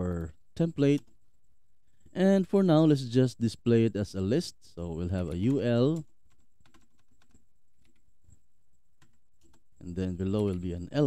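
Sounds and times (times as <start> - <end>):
faint keyboard keystrokes: 5.2 - 8.4.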